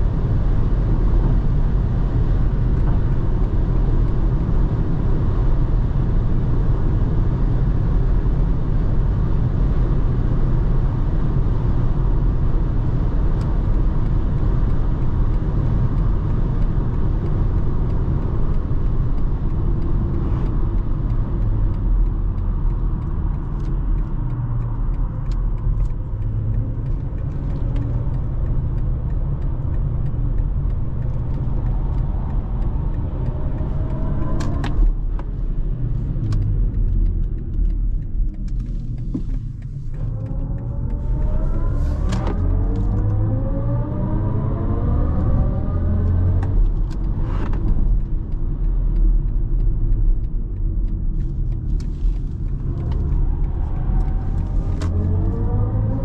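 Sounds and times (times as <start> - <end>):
tyre and wind noise in car: 0.0 - 56.0
faint clicks: 45.3 - 56.0.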